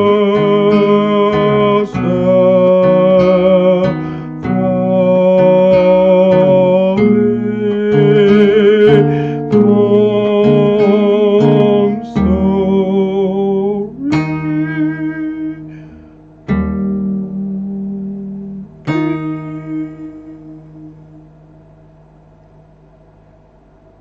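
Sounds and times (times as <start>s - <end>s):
person singing wordlessly: 0.0s - 15.9s, 17.2s - 21.1s
acoustic guitar: 0.0s - 21.5s.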